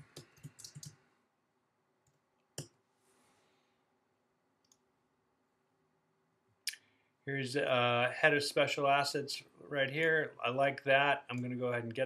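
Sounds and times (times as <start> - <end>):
keyboard and mouse clicks: 0.0 - 1.0.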